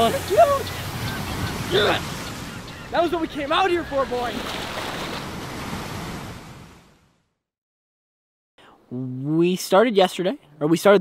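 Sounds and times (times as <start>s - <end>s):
waves splashing over rocks: 0.0s - 6.6s.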